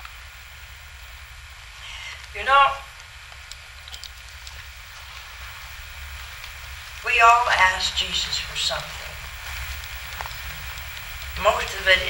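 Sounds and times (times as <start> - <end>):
camcorder hiss and hum: 0.0 - 12.0
faint ticks: 3.0 - 6.7, 8.7 - 11.6.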